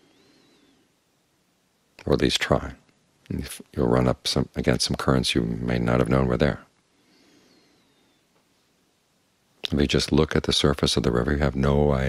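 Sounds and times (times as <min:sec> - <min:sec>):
faint high whistling note: 0:00.0 - 0:00.9.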